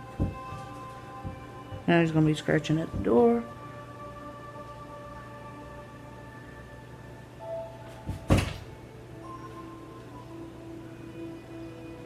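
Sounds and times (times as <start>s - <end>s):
quiet background music: 0.0s - 12.0s
knocks on a door: 8.1s - 8.6s.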